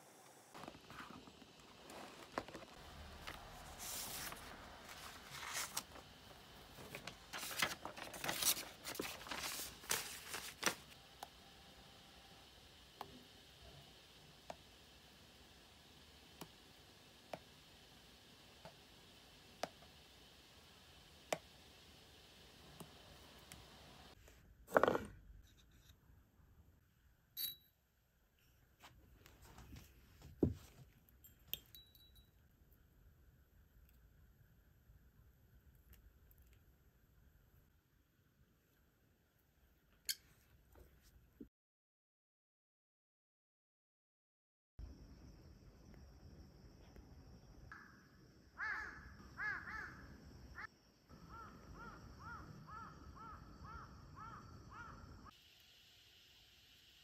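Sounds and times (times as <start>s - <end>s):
crows cawing: 48.6s - 50.1s, 51.3s - 55.0s.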